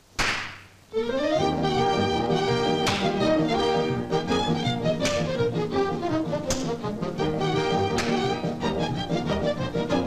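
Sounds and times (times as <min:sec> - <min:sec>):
orchestral cartoon music with brass: 0:00.9 - 0:10.0.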